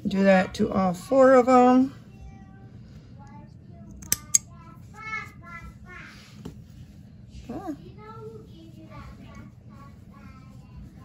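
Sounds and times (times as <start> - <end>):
child singing faintly: 2.0 - 6.4, 7.5 - 11.0
scissor snips: 4.0 - 4.4.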